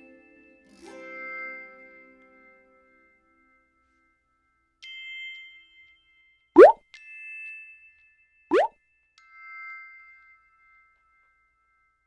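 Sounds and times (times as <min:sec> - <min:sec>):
upward-gliding plop sounds: 0:06.6 - 0:06.8.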